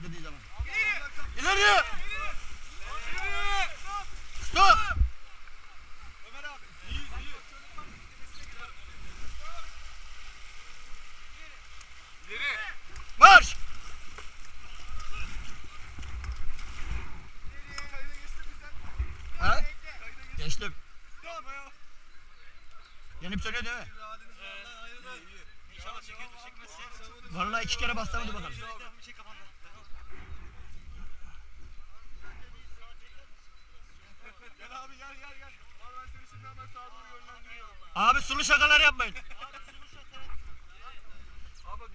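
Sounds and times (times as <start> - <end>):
river water rushing: 0.0 - 17.5.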